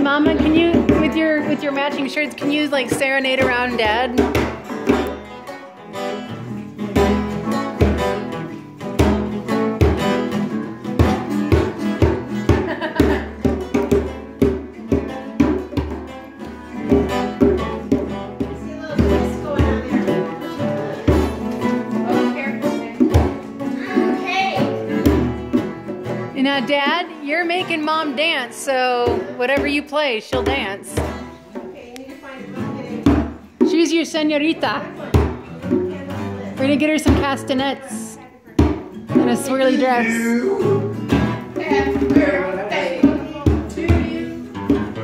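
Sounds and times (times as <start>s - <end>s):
acoustic guitars strumming: 0.0s - 45.0s.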